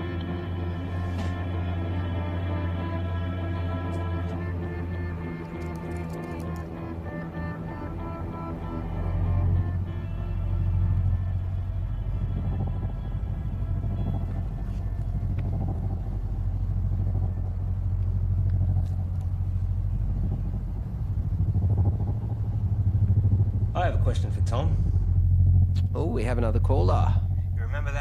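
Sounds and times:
deep low rumble: 0:00.0 - 0:28.0
held music notes: 0:00.0 - 0:28.0.

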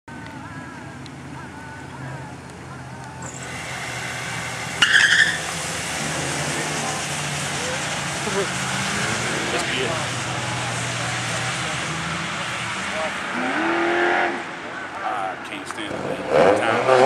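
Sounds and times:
car engines revving: 0:00.1 - 0:17.0
tyre squeal: 0:03.2 - 0:07.0.

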